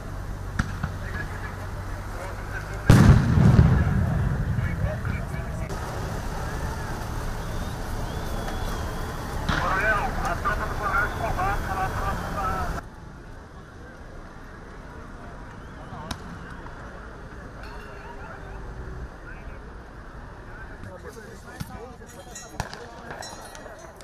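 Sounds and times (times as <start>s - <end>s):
outdoor street noise: 0.0s - 24.0s
loud bang with rumbling tail: 2.9s - 5.8s
voices shouting: 5.2s - 12.8s.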